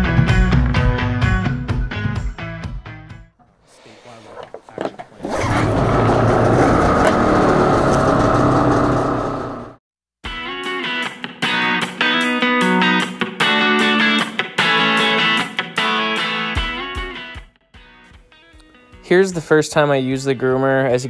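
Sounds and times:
snowmobile engine running: 5.2 - 9.8
electric guitar music: 10.3 - 17.5.

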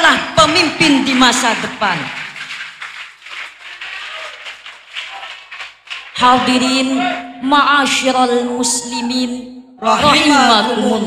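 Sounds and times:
low hall noise: 0.0 - 11.0
speech echoing in a hall: 0.0 - 11.0.

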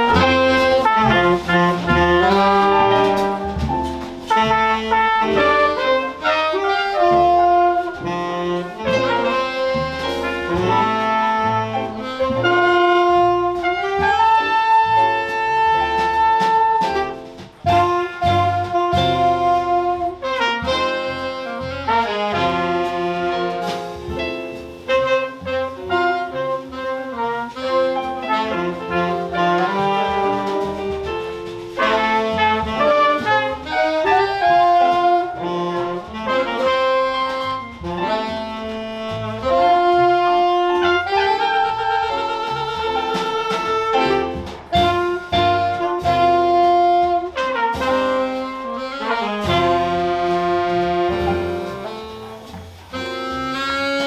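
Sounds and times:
drums: 0.0 - 54.0
electric bass: 0.0 - 54.0
piano: 0.0 - 54.0
saxophones and trumpet melody: 0.0 - 54.0.

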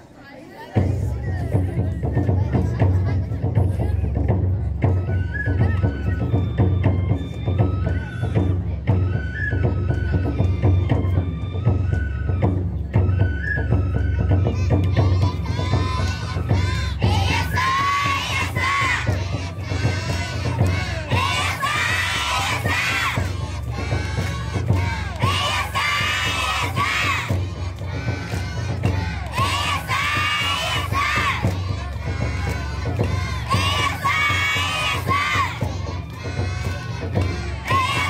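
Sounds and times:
festival music: 0.8 - 38.0
children shouting calls together: 14.6 - 38.0.

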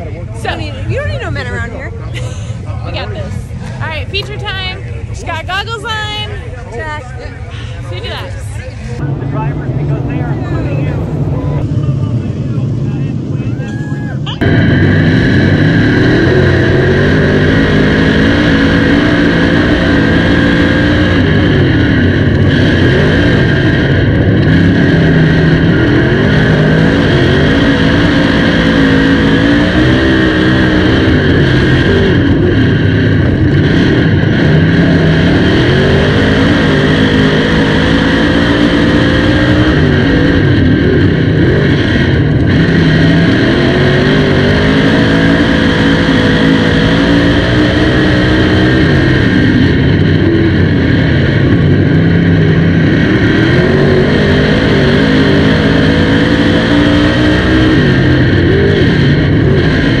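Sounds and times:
race car engine revving: 0.0 - 60.0.

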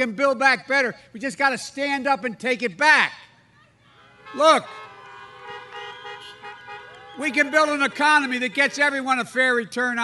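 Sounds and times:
car horns honking: 3.9 - 9.4.

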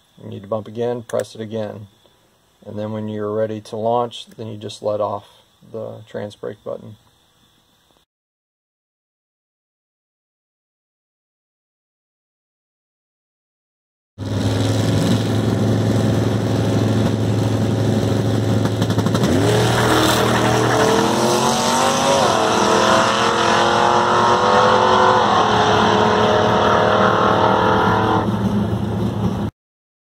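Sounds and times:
drag car engine revving: 14.2 - 29.5.

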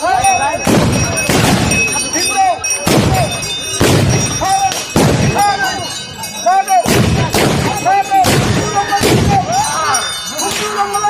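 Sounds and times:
gunshots from long guns: 0.6 - 1.9, 2.9 - 5.4, 6.9 - 9.5
men shouting: 7.8 - 11.0.

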